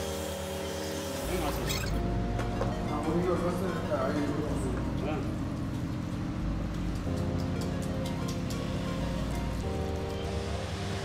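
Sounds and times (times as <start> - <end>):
background music with low tones: 0.0 - 11.0.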